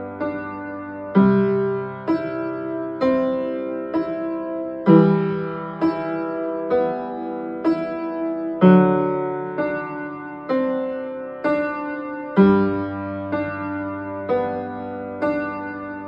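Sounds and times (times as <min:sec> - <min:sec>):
upright piano chords: 0:00.0 - 0:16.0.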